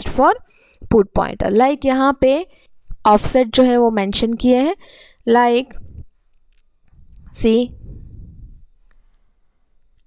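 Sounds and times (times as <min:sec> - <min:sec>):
low rumble: 0:05.7 - 0:06.2, 0:06.9 - 0:09.0.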